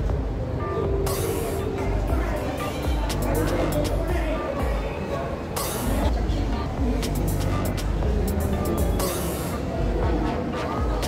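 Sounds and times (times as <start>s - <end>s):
indistinct voices: 0.0s - 11.0s
music: 0.0s - 11.0s.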